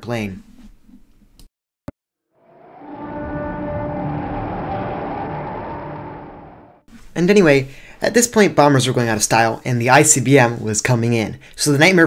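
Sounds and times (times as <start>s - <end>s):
rushing rumbling drone: 2.4s - 6.9s.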